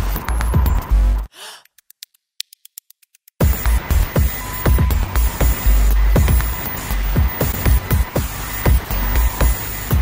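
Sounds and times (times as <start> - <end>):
electronic music with bass beat: 0.0 - 10.0
breathy gasp: 1.3 - 1.7.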